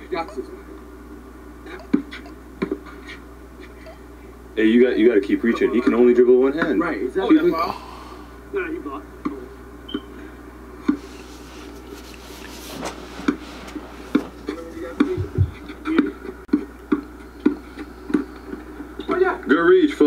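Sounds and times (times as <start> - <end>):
faint voices: 10.9 - 16.3.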